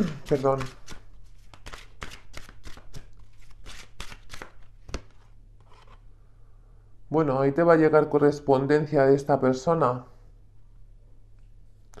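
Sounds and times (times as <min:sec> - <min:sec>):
cards being shuffled: 0:00.0 - 0:06.0.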